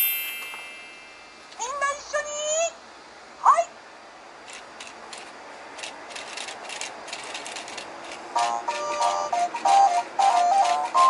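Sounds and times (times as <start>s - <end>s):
rising chime sweep: 0.0s - 1.4s.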